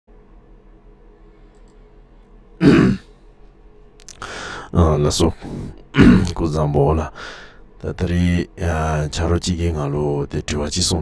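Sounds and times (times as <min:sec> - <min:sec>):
faint steady hum: 0:00.1 - 0:11.0
man clearing his throat: 0:02.6 - 0:03.1, 0:05.9 - 0:06.4.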